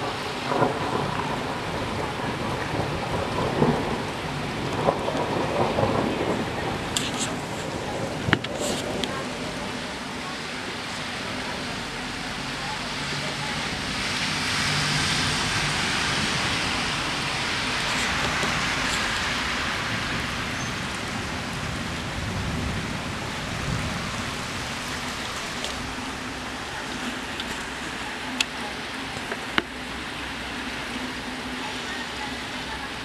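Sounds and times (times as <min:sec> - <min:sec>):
heavy rain on a wet street: 0:00.0 - 0:33.0.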